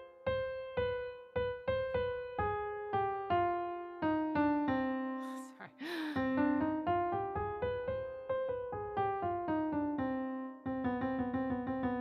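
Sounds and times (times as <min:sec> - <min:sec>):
digital piano notes: 0:00.0 - 0:12.0.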